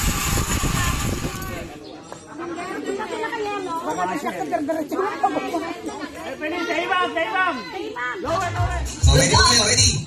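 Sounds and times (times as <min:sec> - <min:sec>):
people talking over one another: 0:00.6 - 0:10.0.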